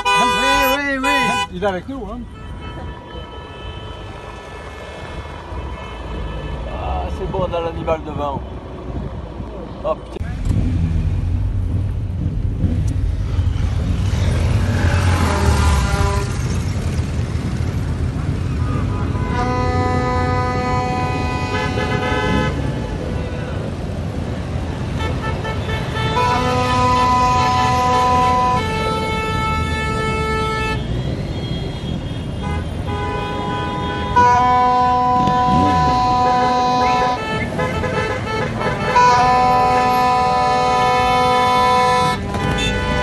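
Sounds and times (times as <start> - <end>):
vehicle horns honking: 0.0 - 4.8, 5.6 - 7.0, 13.2 - 16.6, 18.4 - 23.7, 24.7 - 43.0
car and motorcycle engines rumbling: 0.0 - 43.0.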